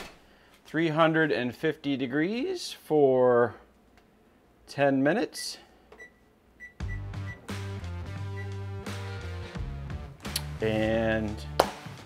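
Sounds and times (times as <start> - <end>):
oven keypad beeps: 6.0 - 7.5, 8.3 - 8.6
background music with sustained notes: 6.8 - 12.0.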